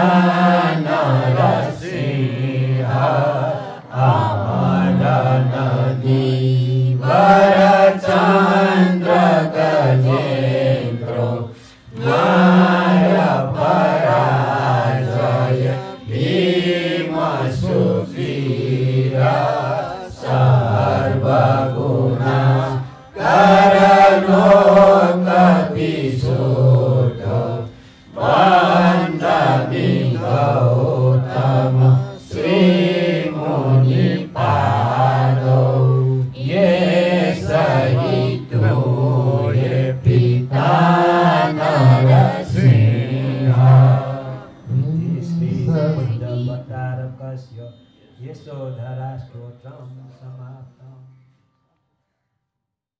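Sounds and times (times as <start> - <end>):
devotional chanting: 0.0 - 52.2.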